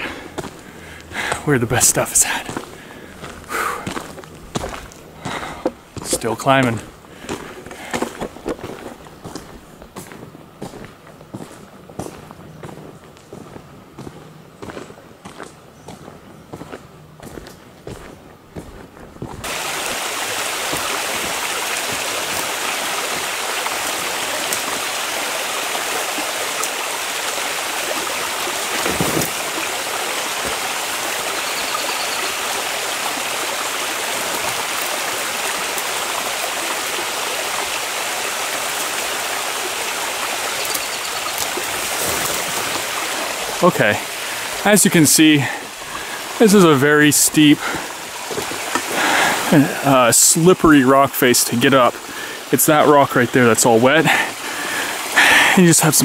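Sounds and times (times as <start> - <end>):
forest creek rushing: 0.0 - 56.0
footsteps on gravel: 0.1 - 20.0, 28.6 - 29.6.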